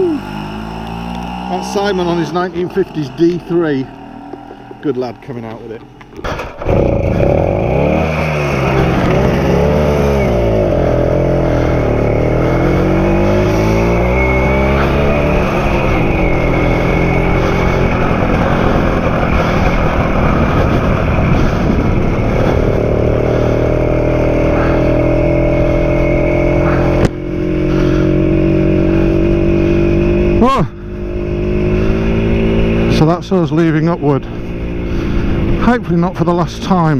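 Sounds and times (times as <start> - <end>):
motorcycle engine pulling away: 0.0 - 36.3.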